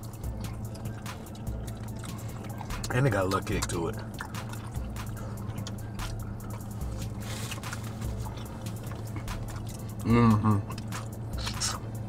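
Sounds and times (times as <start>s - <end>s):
people chewing food: 0.0s - 12.0s
quiet background music: 0.0s - 12.0s
mouth smacks: 0.2s - 12.0s.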